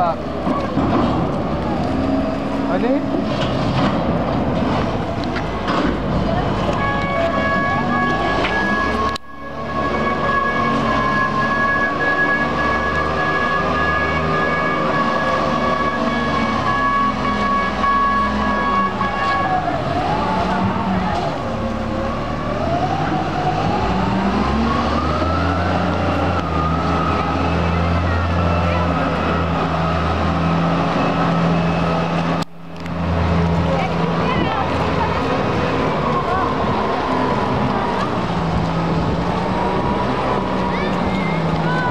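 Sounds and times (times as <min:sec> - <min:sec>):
diesel engine under load: 0:00.0 - 0:41.9.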